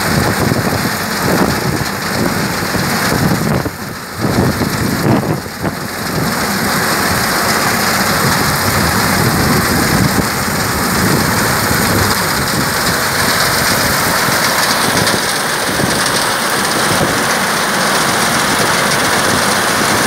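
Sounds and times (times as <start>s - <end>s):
reaper cutter bar cutting wheat: 0.0s - 20.0s
tractor engine running under load: 0.0s - 20.0s.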